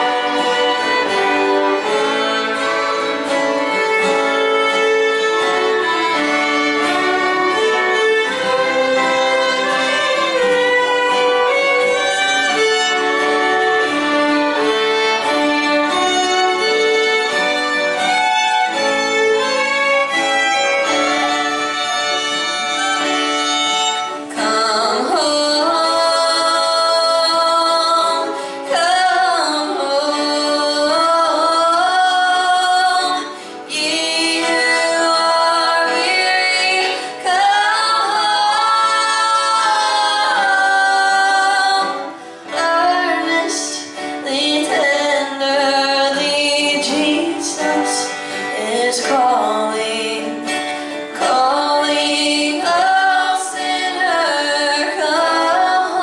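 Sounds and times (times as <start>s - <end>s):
fiddles playing slow melody: 0.0s - 56.0s
strummed acoustic guitars: 0.0s - 56.0s
breaths: 28.3s - 28.7s, 33.3s - 33.7s, 42.1s - 42.5s, 48.1s - 48.5s, 50.7s - 51.1s.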